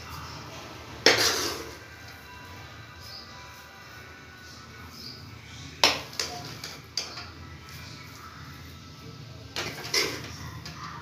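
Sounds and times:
steel spoon scraping a pan: 0:01.0 - 0:01.9, 0:09.6 - 0:10.4.

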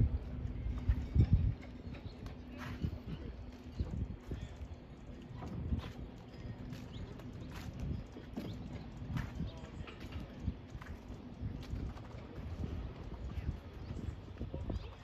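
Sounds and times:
footsteps on a dock: 0:00.0 - 0:15.0.

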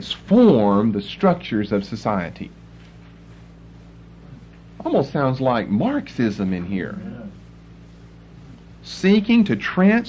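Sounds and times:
faint steady low hum: 0:00.0 - 0:10.0
man lecturing: 0:08.5 - 0:10.0.

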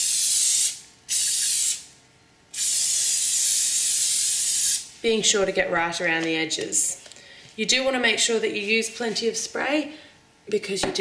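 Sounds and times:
aerosol spray hissing: 0:00.0 - 0:01.8, 0:02.6 - 0:04.9.

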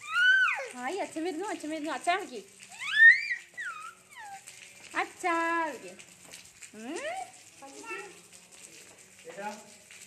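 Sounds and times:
toddler squealing: 0:00.0 - 0:00.8, 0:02.7 - 0:04.5.

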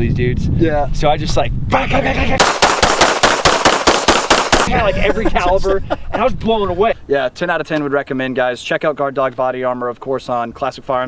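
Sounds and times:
person laughing: 0:01.7 - 0:02.5, 0:04.7 - 0:06.4
rapid gunfire: 0:02.4 - 0:04.7.

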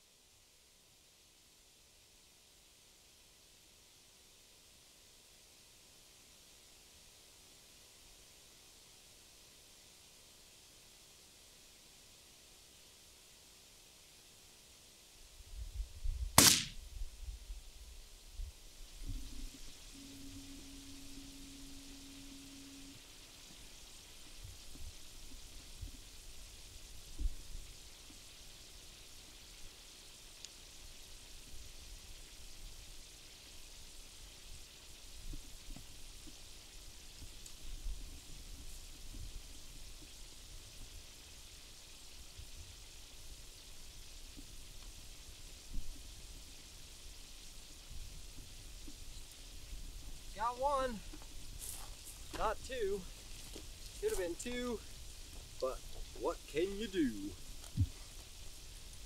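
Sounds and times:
outdoor hiss: 0:00.0 - 0:59.0
wind rumble on microphone: 0:15.4 - 0:20.6, 0:24.2 - 0:28.2, 0:34.3 - 0:41.6, 0:42.2 - 0:50.4, 0:57.3 - 0:59.0
steady hum: 0:19.0 - 0:27.6.

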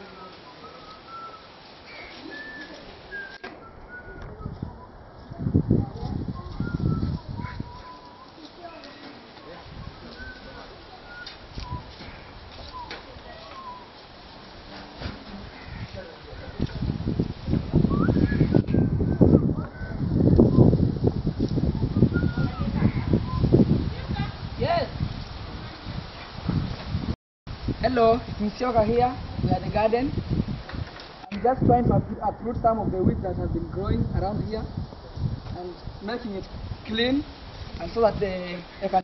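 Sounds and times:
birds chirping: 0:00.0 - 0:04.8
wind buffeting microphone: 0:02.1 - 0:39.0.

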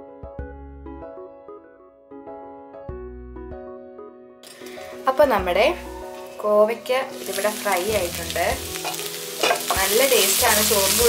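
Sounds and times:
vegetables sizzling in a pan: 0:04.5 - 0:11.0.

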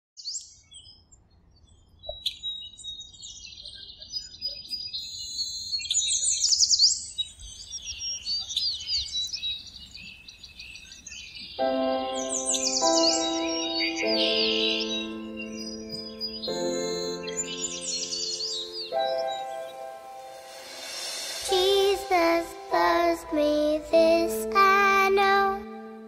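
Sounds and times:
birds chirping and trilling: 0:00.2 - 0:26.0
soft held music chord: 0:11.6 - 0:26.0.

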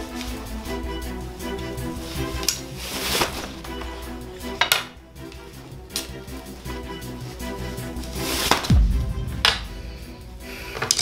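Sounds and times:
wooden sticks clacking: 0:00.0 - 0:08.7, 0:09.4 - 0:11.0
background music: 0:00.0 - 0:11.0.

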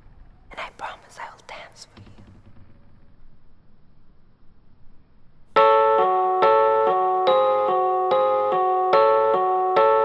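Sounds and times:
person whispering: 0:00.5 - 0:02.0.

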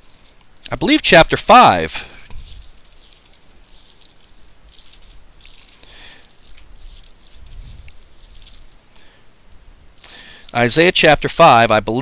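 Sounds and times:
thin pages being turned: 0:00.0 - 0:00.6, 0:02.0 - 0:09.2.

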